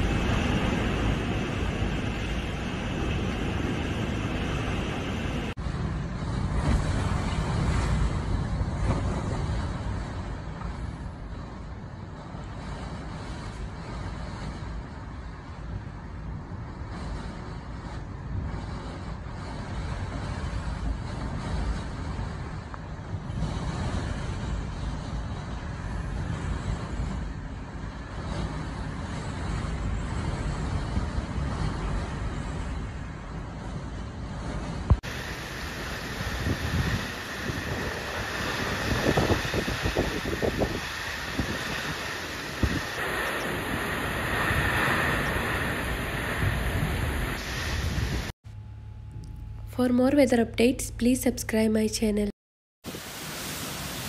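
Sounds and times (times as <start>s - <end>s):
surf breaking against seawall: 0.0s - 10.9s, 34.8s - 48.3s
strong wind buffeting microphone: 0.0s - 48.4s.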